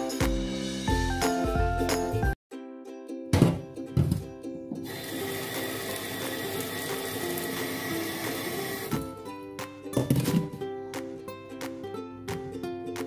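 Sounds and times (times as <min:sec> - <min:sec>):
background music: 0:00.0 - 0:13.0
tap water running into pot: 0:04.8 - 0:09.1.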